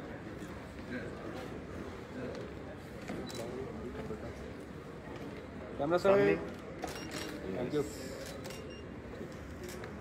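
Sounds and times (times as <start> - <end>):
low hall room noise: 0.0 - 10.0.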